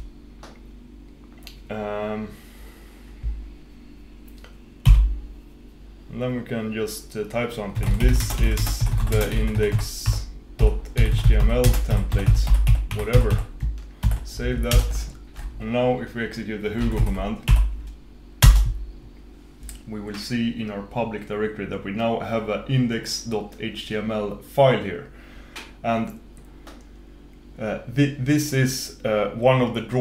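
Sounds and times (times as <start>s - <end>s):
computer keyboard keystroke: 7.8s - 15.5s, 16.8s - 17.7s, 18.4s - 18.8s
keyboard keystroke: 16.8s - 17.7s, 18.4s - 18.8s.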